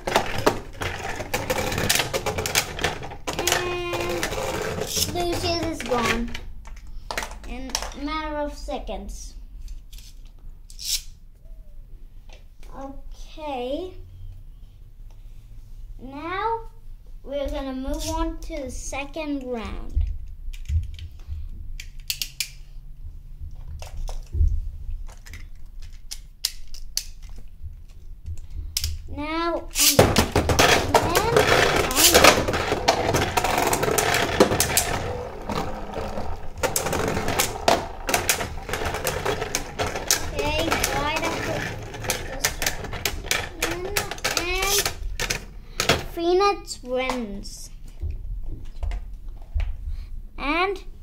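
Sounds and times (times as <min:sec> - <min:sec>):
spinning tops rattling scrape: 0:00.0 - 0:06.3, 0:29.7 - 0:45.4
spinning tops knocking: 0:29.8 - 0:45.4.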